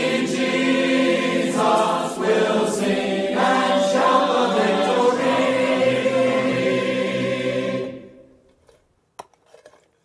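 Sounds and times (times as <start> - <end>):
group singing a hymn: 0.0 - 8.4.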